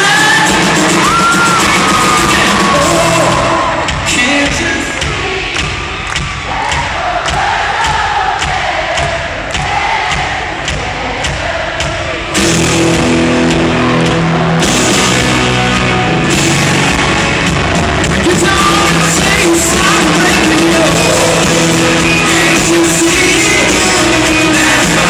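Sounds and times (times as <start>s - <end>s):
person singing: 0.0s - 5.8s, 18.0s - 25.0s
guitar: 0.0s - 6.8s, 11.2s - 25.0s
steady drum beat: 0.0s - 25.0s.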